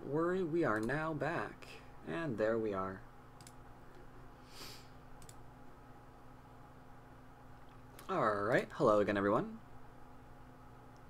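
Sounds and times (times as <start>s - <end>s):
low steady hum: 0.0s - 11.0s
computer mouse clicks: 0.7s - 1.0s, 3.4s - 4.1s, 5.2s - 5.4s.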